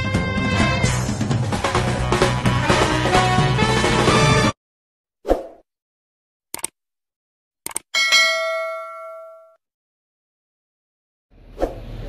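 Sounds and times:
notification bell ding: 8.0 - 9.6.

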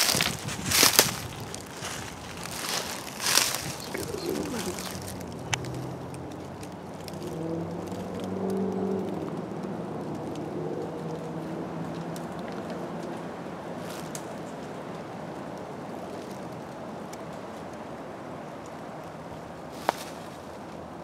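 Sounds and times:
footsteps crunching dry leaves: 0.0 - 14.7, 19.6 - 20.7.

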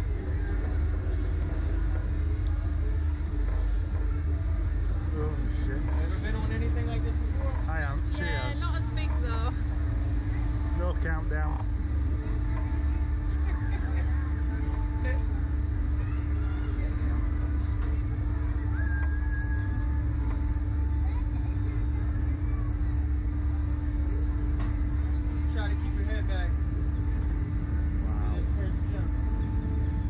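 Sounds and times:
constant hum: 0.0 - 30.0
faint voices: 0.0 - 30.0
low rumble: 0.0 - 30.0
people talking: 5.0 - 9.6, 12.6 - 18.6, 28.0 - 29.4.

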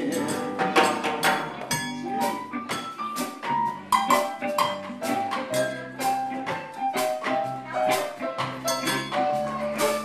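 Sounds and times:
drum kit beat: 0.0 - 10.0
keyboard melody: 0.0 - 10.0.

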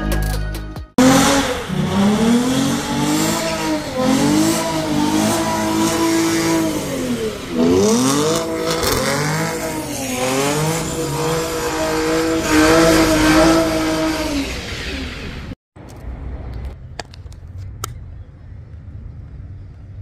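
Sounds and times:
car engine revving hard: 1.0 - 15.6
tyres spinning in a burnout: 1.0 - 15.6.

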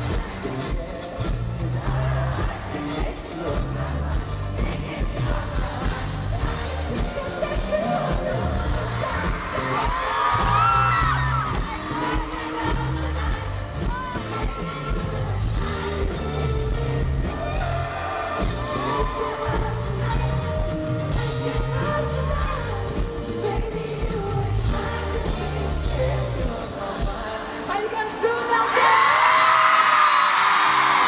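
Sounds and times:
man singing: 0.0 - 29.3
crowd noise: 0.0 - 31.0
live pop band: 0.0 - 31.0.

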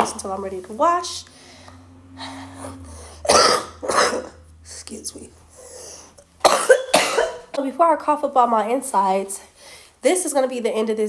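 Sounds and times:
woman coughing: 3.3 - 4.4, 6.4 - 7.7.

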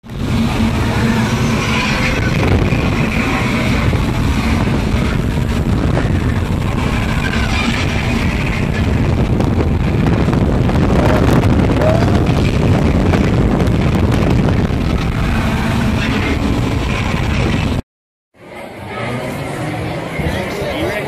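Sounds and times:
fans blowing air on microphone: 0.0 - 17.8.

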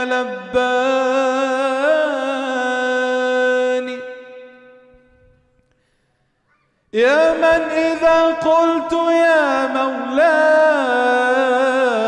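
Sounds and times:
man singing solo: 7.0 - 12.0.

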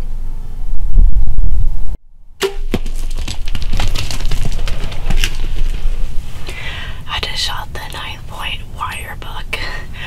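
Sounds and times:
animal crashing through dry brush: 2.4 - 6.4.

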